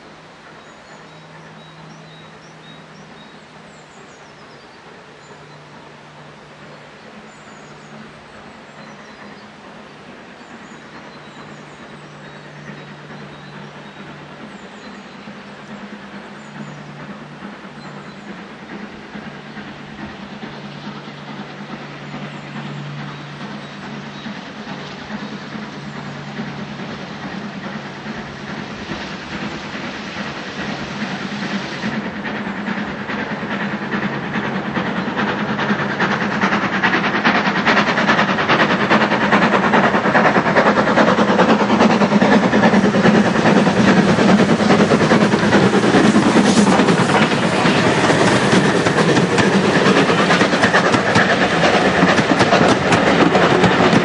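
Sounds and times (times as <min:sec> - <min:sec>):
steam locomotive exhaust beats: 0:00.0 - 0:54.0
train wheels clattering over rail joints: 0:00.4 - 0:54.0.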